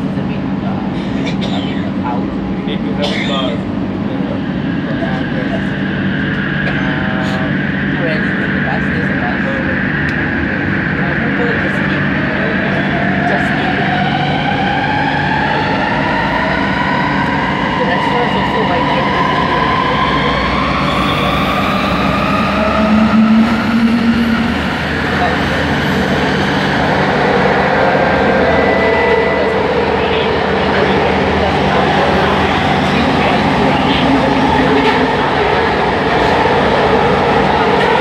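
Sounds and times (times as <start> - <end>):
metro train motors whining: 0.0 - 38.0.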